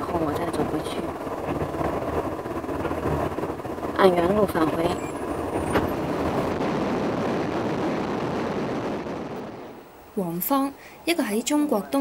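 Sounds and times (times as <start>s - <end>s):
train running noise inside carriage: 0.0s - 6.6s.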